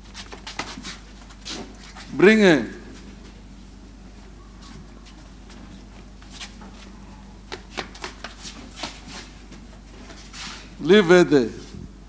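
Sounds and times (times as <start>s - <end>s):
knocks and shuffling: 0.0s - 10.8s
steady low hum: 0.0s - 12.0s.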